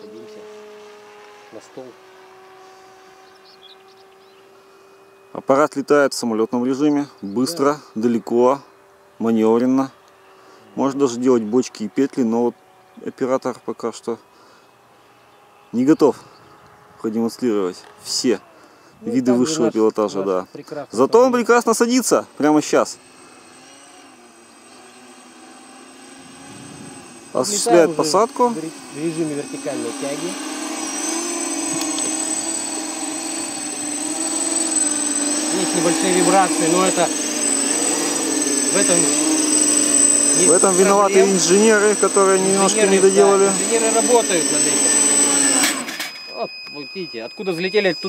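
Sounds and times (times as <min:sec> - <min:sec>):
drone propeller motors humming: 0:00.0 - 0:05.6, 0:06.6 - 0:48.0
faint high bird chirps: 0:03.1 - 0:05.4, 0:46.2 - 0:48.0.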